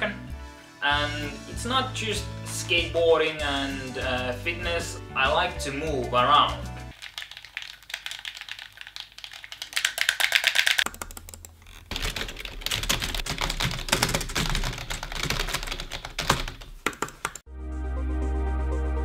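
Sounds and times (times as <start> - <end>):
fast typing on keyboard: 6.9 - 17.4.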